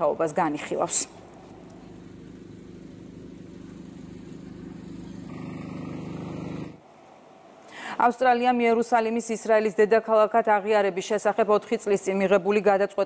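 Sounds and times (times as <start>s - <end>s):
faint hum: 0.0s - 12.8s.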